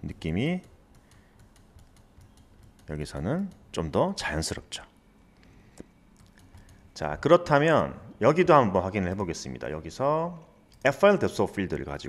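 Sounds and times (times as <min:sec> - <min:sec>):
low room hiss: 0:00.0 - 0:12.0
computer keyboard clicking: 0:00.3 - 0:03.7, 0:06.2 - 0:06.9.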